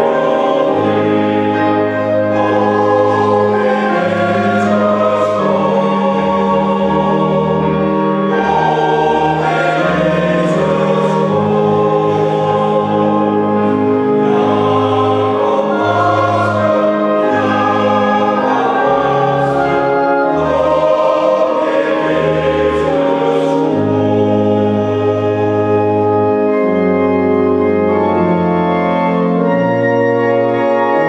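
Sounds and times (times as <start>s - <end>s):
male choir singing a hymn: 0.0s - 29.6s
organ sustained bass notes: 0.0s - 31.0s.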